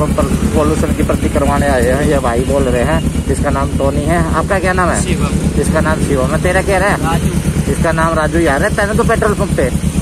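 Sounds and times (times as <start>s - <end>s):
motorcycle engine idling: 0.0s - 10.0s.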